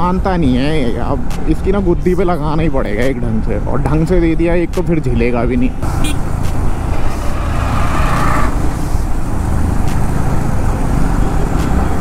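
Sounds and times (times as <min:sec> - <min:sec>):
motorcycle engine: 0:05.8 - 0:12.0.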